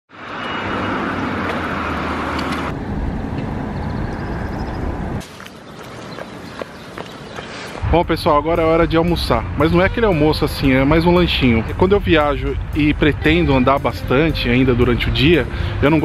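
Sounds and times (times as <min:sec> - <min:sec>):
traffic and tyre noise: 0:00.1 - 0:16.0.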